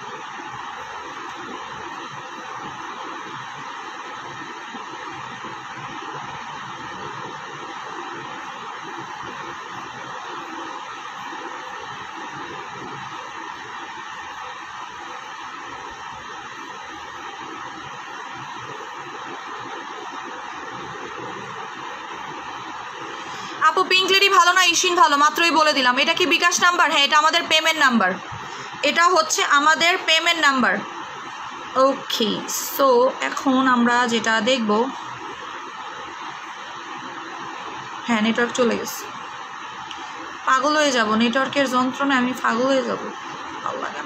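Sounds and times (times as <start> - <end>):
continuous hiss: 0.0 - 44.0.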